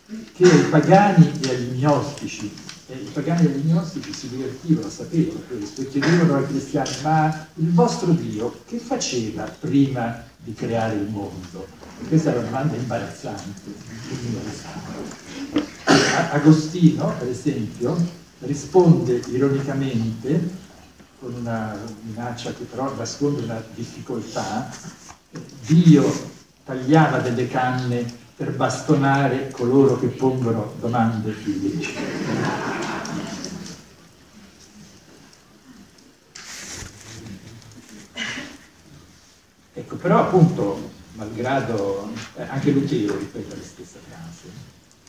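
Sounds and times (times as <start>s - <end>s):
man speaking: 0.0s - 32.4s, 39.7s - 44.7s.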